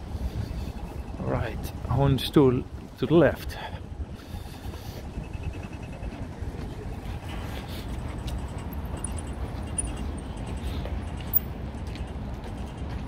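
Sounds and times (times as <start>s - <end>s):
faint rapid ticking: 3.6s - 13.0s.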